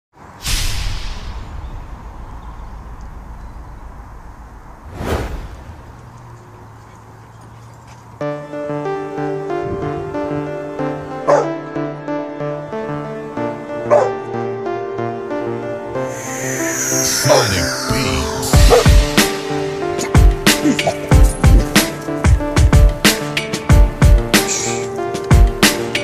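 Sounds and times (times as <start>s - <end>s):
dog barking: 11.3s - 11.6s, 13.9s - 14.2s.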